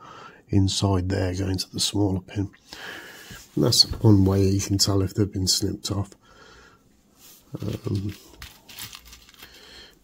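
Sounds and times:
faint crinkling: 7.1 - 10.0
electronic components clicking and rustling: 7.6 - 9.6.

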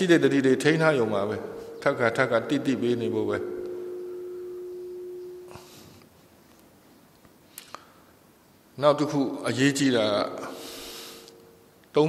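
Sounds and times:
single-pitched ringing tone: 0.0 - 6.1, 10.1 - 11.8.

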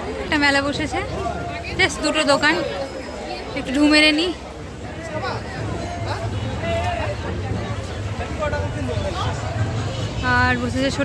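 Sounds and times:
crowd chatter: 0.0 - 11.0
people talking close by: 0.0 - 11.0.

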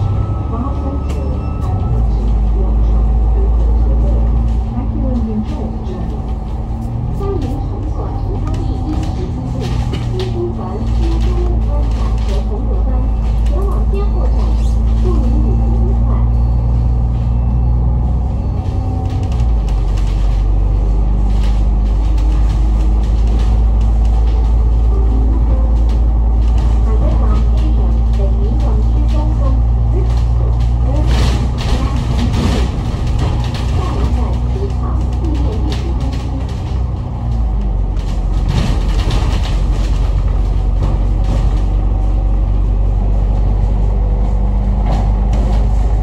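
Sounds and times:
bus engine droning: 0.0 - 46.0
knocks and rattles from bus body: 0.8 - 46.0.

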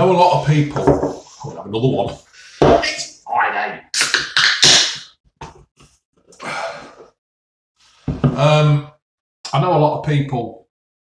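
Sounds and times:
man exhaling: 6.4 - 7.1.

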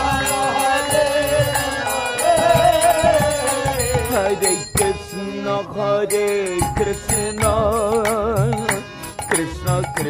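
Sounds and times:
percussion strikes: 0.0 - 5.3, 6.1 - 10.0
sustained instrumental tones: 0.0 - 10.0.

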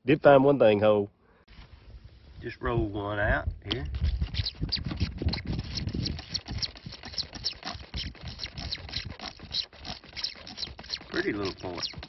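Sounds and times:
digging tool scraping clay soil: 3.8 - 12.0.

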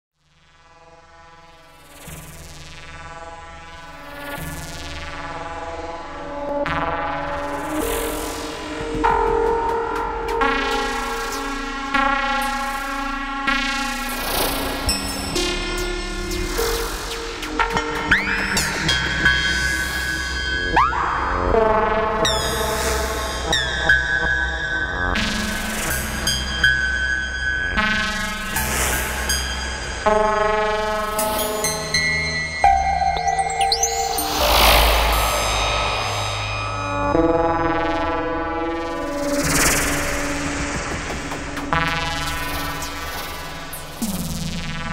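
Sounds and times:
buzzy synthesizer tones: 33.4 - 37.9.

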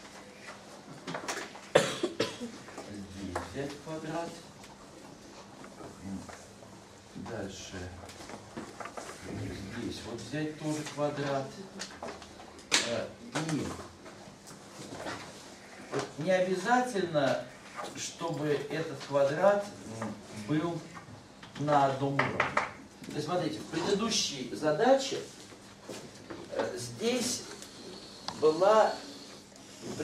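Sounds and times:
person coughing: 1.7 - 2.6.

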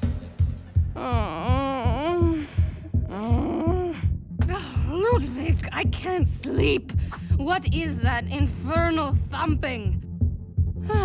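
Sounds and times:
muffled thumping bass beat: 0.0 - 11.0
woman groaning in her sleep: 1.0 - 4.2.

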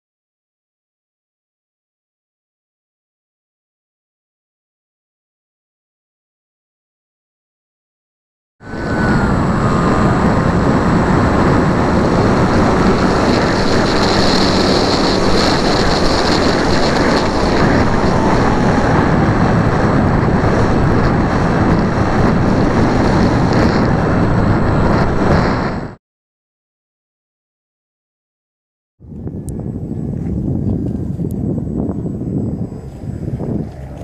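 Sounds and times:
model plane motor whine: 8.6 - 25.9, 29.2 - 34.0
wind rush on microphone: 8.6 - 26.0, 29.0 - 34.0.

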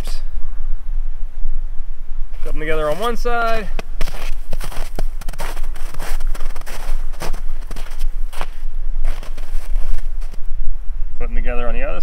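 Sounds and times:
wind rumble on microphone: 0.0 - 12.0
footsteps on snow: 2.4 - 10.4.

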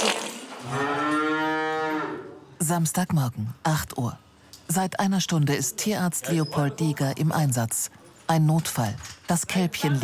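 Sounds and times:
cow mooing low: 0.6 - 2.5.

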